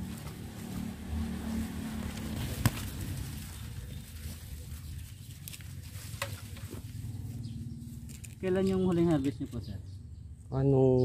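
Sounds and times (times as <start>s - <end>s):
corn plants rustling and snapping: 1.4s - 6.9s.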